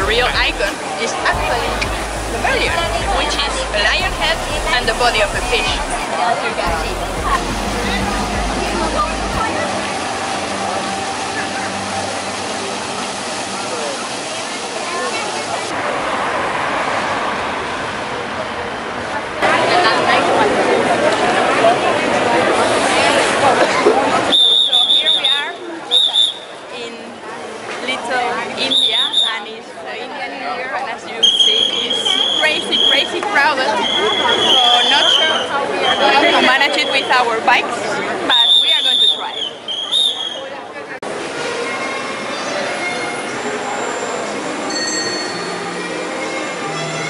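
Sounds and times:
steady high-pitched tone: 0.0s - 15.7s
fountain water splashing: 0.0s - 15.8s
crowd talking faintly: 0.0s - 47.0s.

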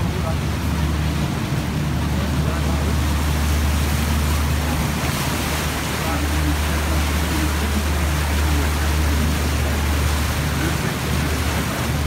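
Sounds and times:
boat engine droning: 0.0s - 12.0s
rushing water: 0.0s - 12.0s
wind: 0.0s - 12.0s
faint voices: 5.6s - 12.0s.

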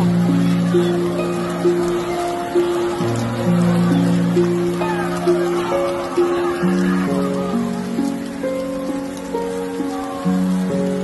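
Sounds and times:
background music of held notes: 0.0s - 11.0s
steady rain falling: 0.0s - 11.0s.

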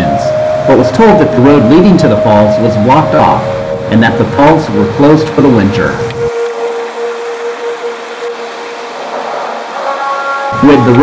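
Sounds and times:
held music tone: 0.0s - 11.0s
stream rushing over rapids: 0.6s - 11.0s.

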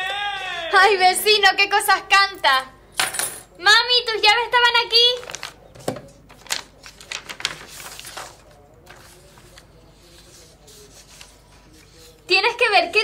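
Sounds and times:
paper rustling: 5.0s - 12.3s.

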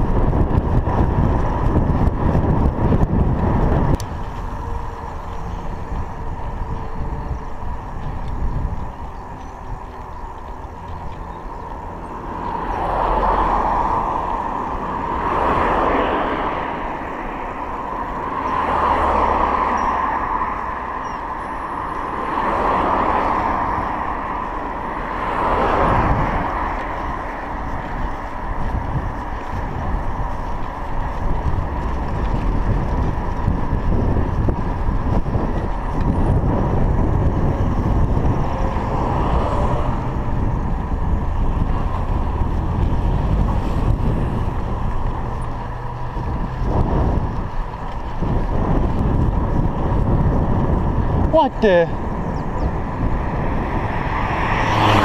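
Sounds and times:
vehicles passing: 0.0s - 55.0s
wind buffeting microphone: 0.0s - 55.0s.

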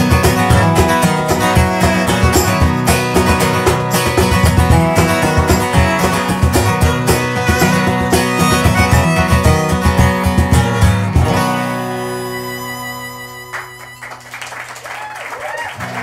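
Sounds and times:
acoustic guitar strumming: 0.0s - 14.5s
violin playing: 0.6s - 3.2s, 5.3s - 14.2s.

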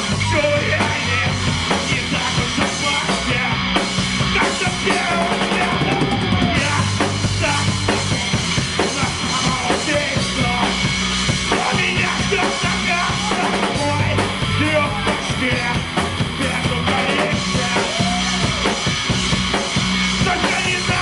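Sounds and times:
bass guitar riff: 0.0s - 21.0s
drum kit beating: 0.0s - 21.0s
electric guitar: 0.0s - 21.0s.

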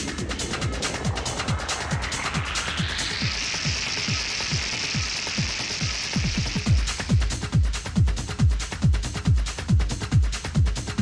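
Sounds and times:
hissing noise swell: 0.0s - 7.9s
techno beat: 0.0s - 11.0s
techno kick drum: 0.0s - 11.0s.

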